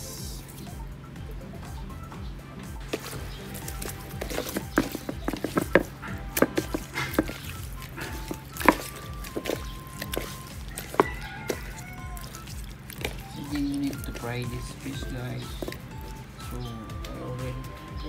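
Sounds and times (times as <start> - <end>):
background music: 0.0 - 18.0
taps against bowl: 2.9 - 16.1
wet squishing of fish: 3.0 - 16.2.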